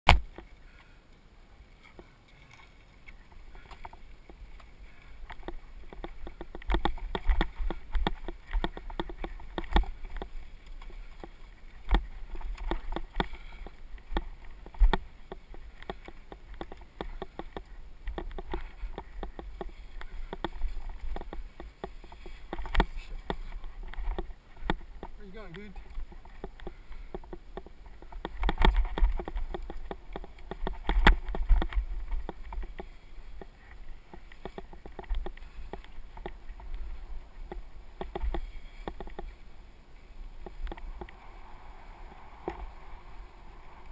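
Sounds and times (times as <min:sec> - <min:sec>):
bike rattling: 0:03.1 - 0:39.6.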